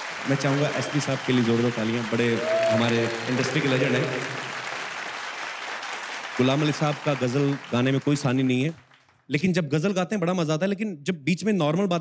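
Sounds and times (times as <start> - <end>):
audience applauding: 0.0 - 9.2.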